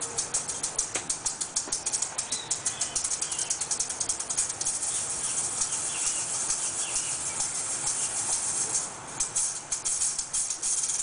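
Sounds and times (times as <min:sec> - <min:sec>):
maracas shaken: 0:00.0 - 0:11.0.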